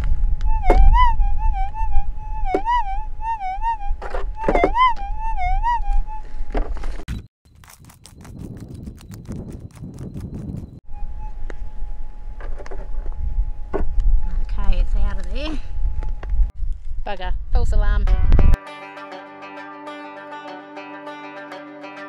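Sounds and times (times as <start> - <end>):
metal detector warbling tone: 0.5 - 6.2
pick digging stony ground: 6.7 - 10.8.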